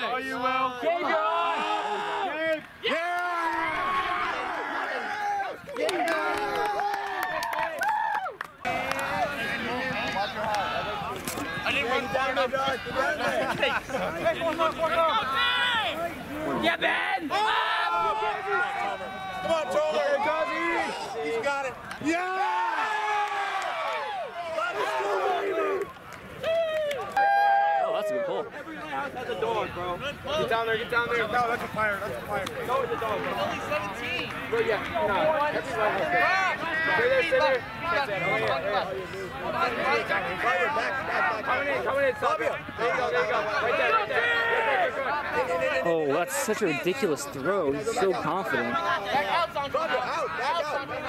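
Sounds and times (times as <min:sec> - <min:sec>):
people shouting and cheering: 0:00.0 - 0:51.0.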